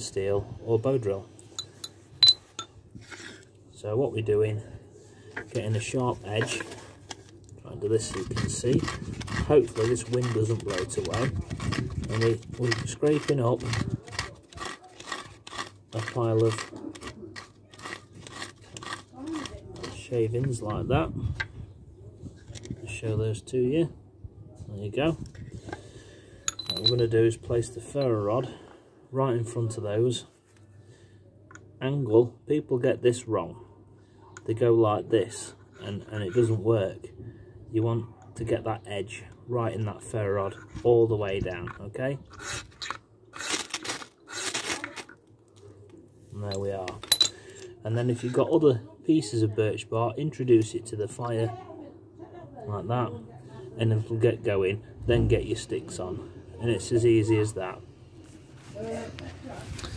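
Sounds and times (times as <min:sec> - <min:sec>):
ferro rod scraping bark: 0:07.9 - 0:20.1.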